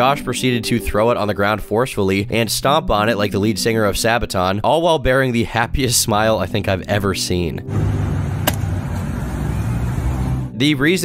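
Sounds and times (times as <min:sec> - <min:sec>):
passing car rumble: 0:07.7 - 0:10.6.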